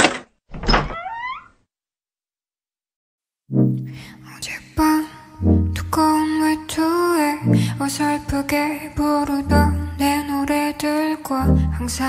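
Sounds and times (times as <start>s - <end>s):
short rising squeak: 0.7s - 1.6s.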